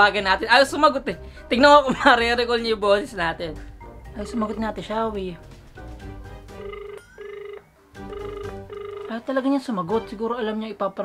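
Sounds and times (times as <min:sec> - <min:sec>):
phone ringing tone beeps: 0:04.2 - 0:04.8, 0:06.5 - 0:09.2.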